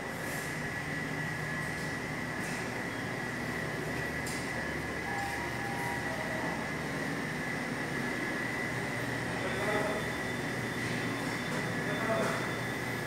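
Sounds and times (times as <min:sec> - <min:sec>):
high whine: 0:00.0 - 0:13.0
ventilation hum: 0:00.0 - 0:13.0.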